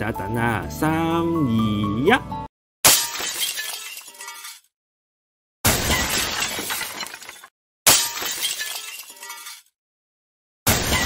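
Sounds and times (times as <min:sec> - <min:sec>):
glass shattering: 0:02.8 - 0:04.7, 0:05.7 - 0:09.8, 0:10.7 - 0:11.0.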